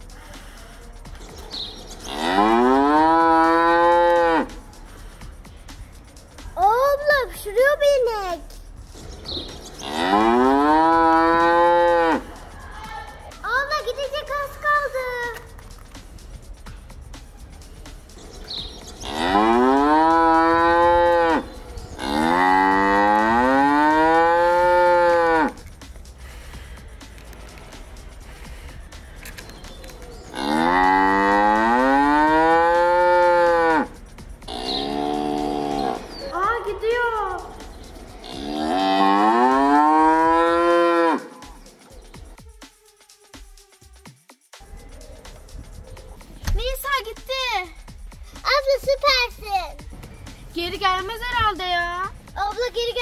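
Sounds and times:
cow mooing: 9.8 - 12.3, 19.0 - 25.6, 30.4 - 33.9, 38.2 - 41.4.

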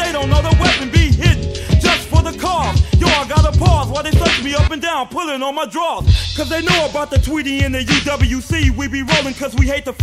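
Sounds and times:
man rapping over a beat: 0.0 - 10.0.

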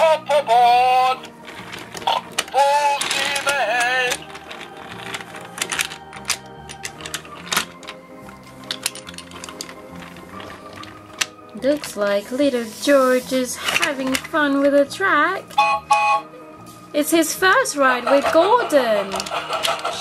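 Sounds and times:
toy train clicking on plastic track: 0.0 - 16.2, 17.0 - 20.0
background music: 0.0 - 20.0
person speaking: 2.1 - 4.3, 11.5 - 15.5.

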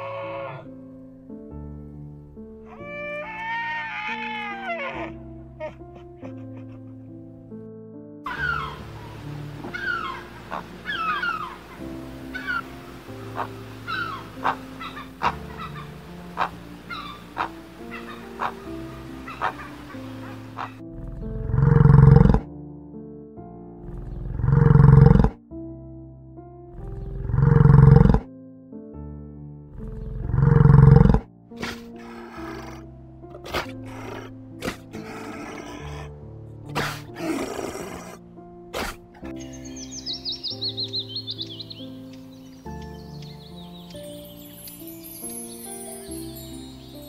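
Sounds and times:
soft music: 0.0 - 47.0
high falling chirps: 8.3 - 20.7, 39.3 - 47.0
deep animal roars: 20.2 - 22.5, 23.8 - 25.4, 26.7 - 28.3, 29.7 - 36.2, 36.8 - 38.2.

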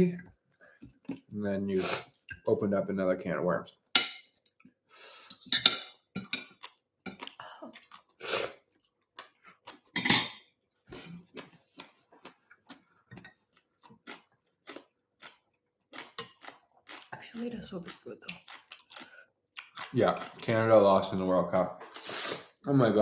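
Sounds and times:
cutlery clinking on dishes: 4.0 - 4.4, 5.4 - 7.2, 10.0 - 10.4.

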